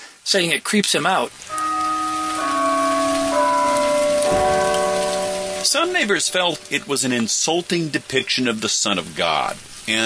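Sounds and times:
steady hiss: 0:00.0 - 0:10.0
background music of held chords: 0:01.5 - 0:07.0.

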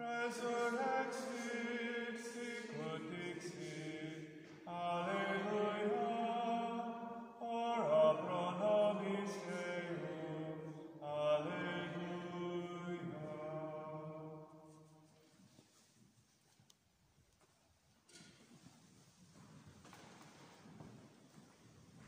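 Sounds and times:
unaccompanied chant: 0:00.0 - 0:14.8.

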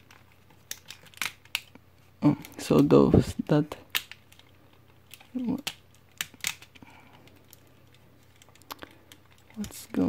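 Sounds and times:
plastic toy parts clicking: 0:00.0 - 0:01.8, 0:03.5 - 0:10.0.

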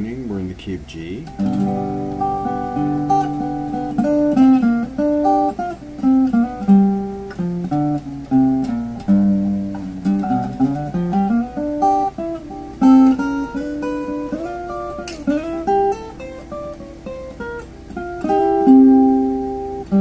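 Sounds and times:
fingerpicked acoustic guitar blues: 0:01.0 - 0:20.0.

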